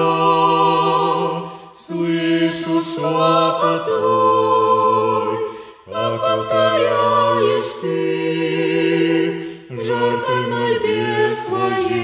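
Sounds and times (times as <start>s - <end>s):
women singing a cappella: 0.0s - 12.0s.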